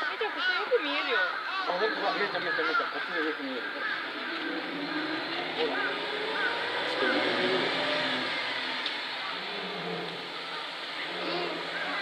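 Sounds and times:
faint voices: 0.0 - 12.0
bus engine running: 3.6 - 12.0.

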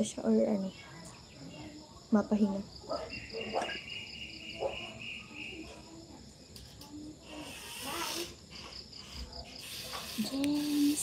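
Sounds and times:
crickets chirping: 0.0 - 11.0
lower insect trill: 0.0 - 11.0.

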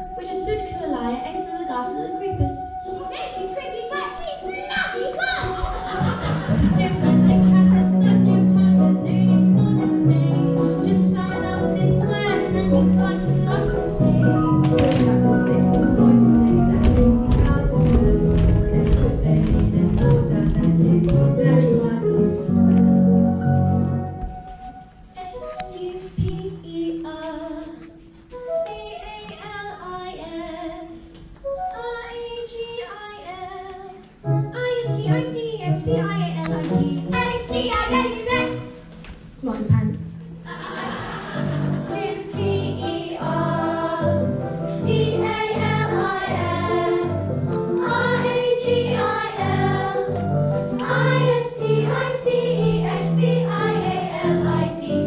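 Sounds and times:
children talking and calling out: 0.0 - 14.4
girls singing together: 40.5 - 55.0.

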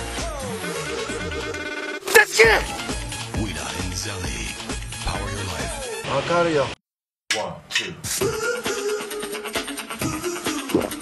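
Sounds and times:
music: 0.0 - 6.8, 7.8 - 11.0
loud shouted voice: 2.0 - 2.8.

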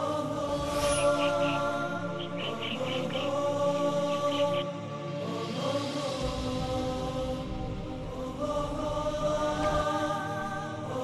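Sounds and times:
wordless voices chanting drone: 0.0 - 11.0.

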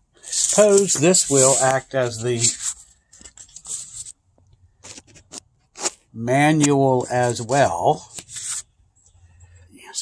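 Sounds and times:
paper rustling and scraping: 0.2 - 4.2, 4.8 - 6.0, 8.0 - 8.7.

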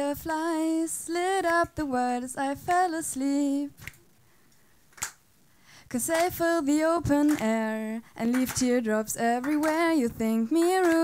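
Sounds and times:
person singing: 5.9 - 11.0.

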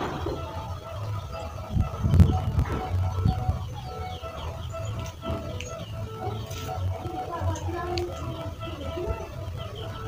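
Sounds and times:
background music with pulsing bass: 0.0 - 10.0
bird chirps: 0.0 - 10.0.

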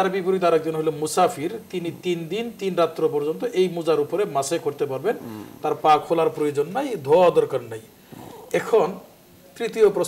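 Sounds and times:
man speaking: 0.0 - 7.9, 8.5 - 10.0.

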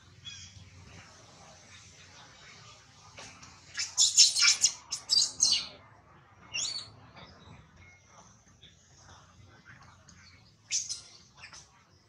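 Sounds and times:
monkey squealing: 3.8 - 5.6.

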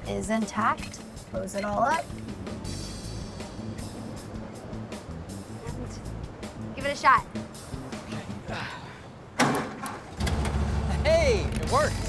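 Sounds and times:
car engine cranking and starting: 9.4 - 12.0.

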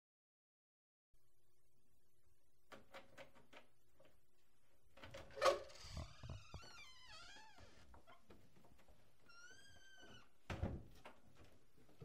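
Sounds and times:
door hinges creaking: 5.1 - 8.4
door hinge squeak: 9.3 - 10.3.

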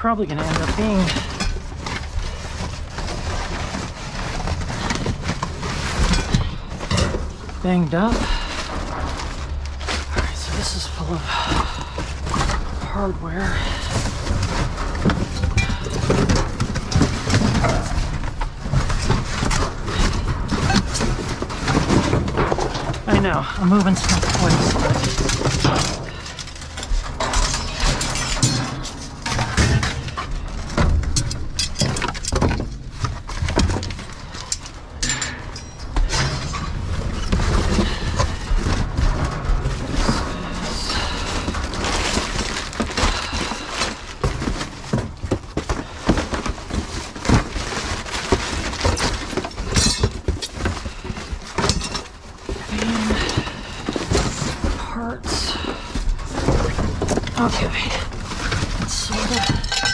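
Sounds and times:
cardboard boxes rustling: 0.1 - 59.9
metal hardware clinking: 34.5 - 36.0.

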